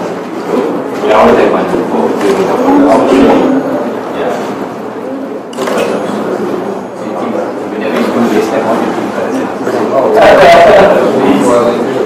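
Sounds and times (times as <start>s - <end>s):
people talking indistinctly: 0.5s - 12.0s.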